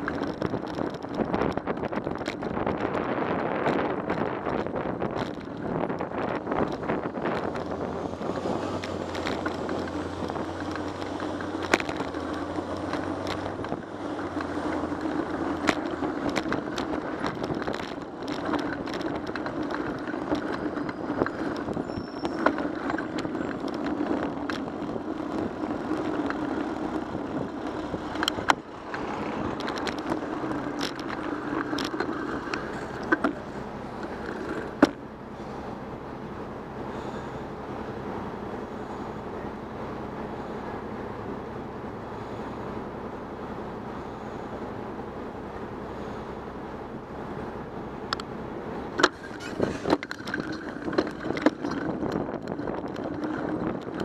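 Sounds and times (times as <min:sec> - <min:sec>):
bicycle clicking and rattling: 0:00.0 - 0:35.8, 0:36.8 - 0:37.7, 0:47.5 - 0:54.0
motor traffic: 0:00.0 - 0:54.0
wind and road noise: 0:00.0 - 0:54.0.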